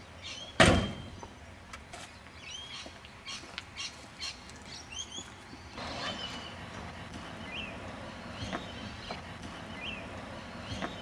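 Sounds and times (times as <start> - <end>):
birds chirping: 0.0 - 11.0
car door thud: 0.6 - 1.1.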